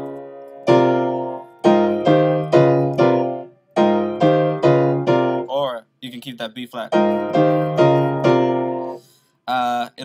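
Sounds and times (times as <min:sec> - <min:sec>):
piano playing gospel chords: 0:00.0 - 0:05.5, 0:06.9 - 0:09.0.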